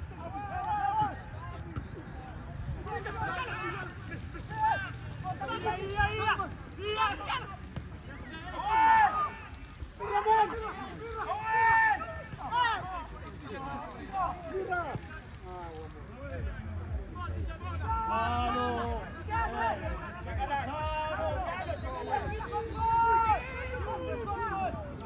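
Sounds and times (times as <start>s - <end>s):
people shouting and calling out: 0.0s - 25.0s.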